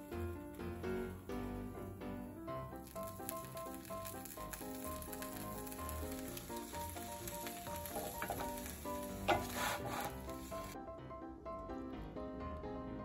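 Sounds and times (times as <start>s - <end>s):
meat sizzling in a frying pan: 0.0s - 10.8s
background music: 0.0s - 13.0s
spatula working food in pan: 5.0s - 10.8s.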